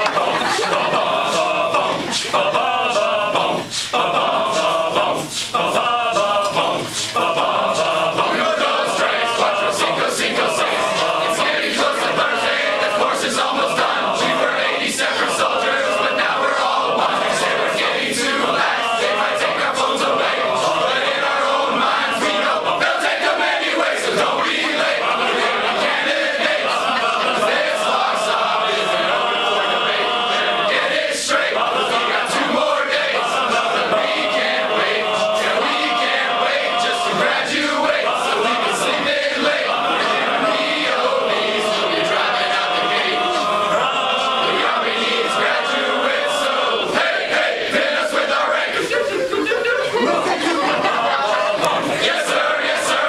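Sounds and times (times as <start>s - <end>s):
men singing in unison: 0.0s - 49.1s, 50.0s - 53.0s.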